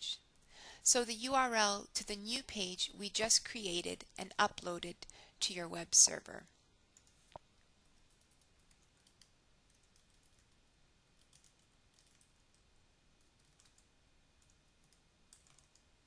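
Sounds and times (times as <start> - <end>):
faint keyboard typing: 6.4 - 16.0.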